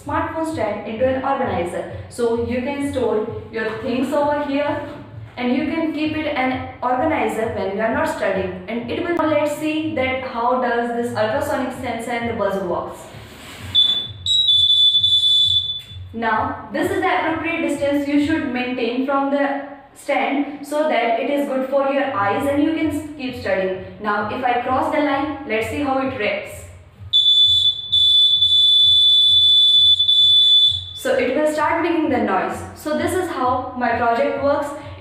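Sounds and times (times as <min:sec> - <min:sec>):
high-pitched buzzer beep: 0:13.8 - 0:16.1, 0:27.1 - 0:31.0.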